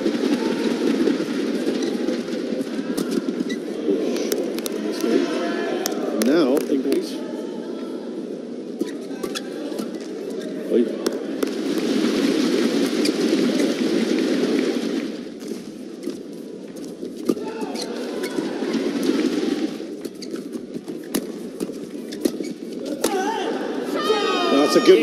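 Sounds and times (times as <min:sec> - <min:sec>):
crowd noise: 0:00.0 - 0:25.0
shoe squeaks: 0:08.8 - 0:10.7, 0:20.0 - 0:22.9.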